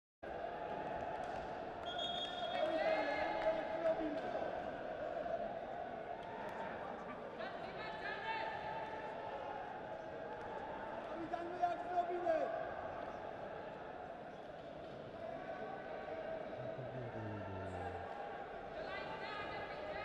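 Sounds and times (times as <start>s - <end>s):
hum of hall and crowd: 0.2s - 20.0s.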